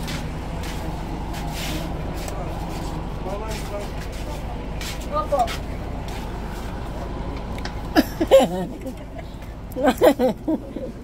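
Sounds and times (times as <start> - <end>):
bus engine idling: 0.0 - 11.0.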